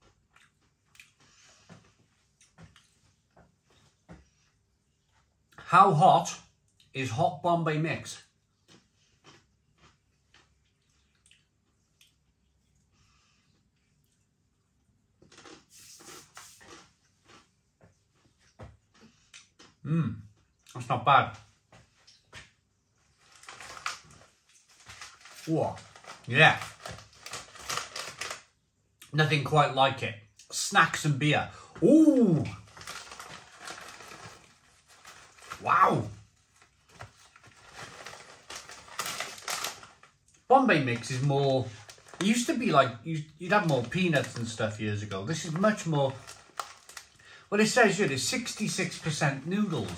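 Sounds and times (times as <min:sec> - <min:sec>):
crunching snack in mouth: 0:08.6 - 0:12.8, 0:15.2 - 0:17.5, 0:23.2 - 0:28.5, 0:32.4 - 0:35.8, 0:36.5 - 0:42.7, 0:45.4 - 0:47.3.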